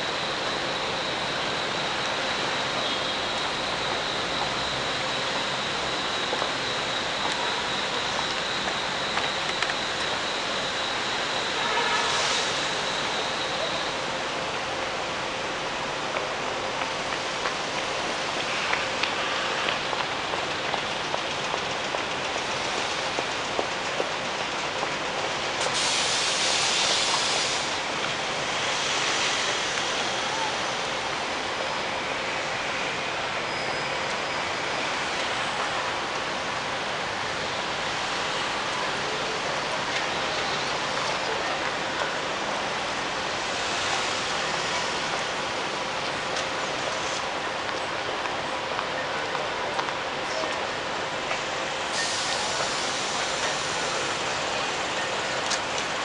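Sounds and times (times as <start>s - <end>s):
outdoor city din: 0.0s - 56.0s
loud hiss: 10.0s - 14.1s, 25.5s - 31.4s, 51.4s - 56.0s.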